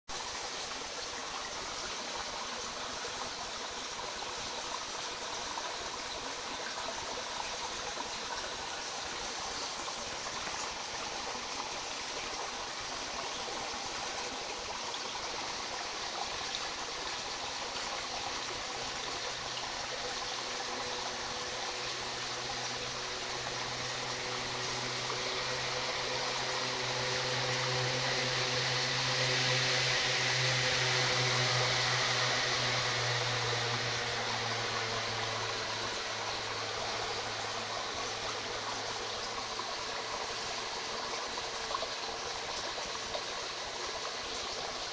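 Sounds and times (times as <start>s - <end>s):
creek water running underwater: 0.1s - 44.9s
low steady hum: 0.2s - 44.9s.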